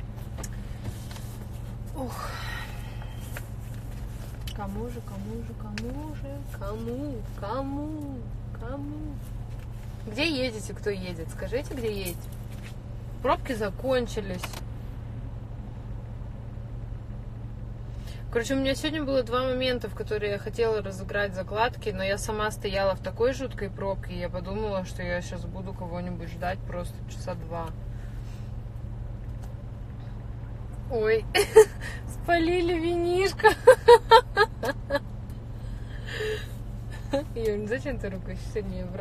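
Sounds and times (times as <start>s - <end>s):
car engine hum inside cabin: 0.0s - 39.0s.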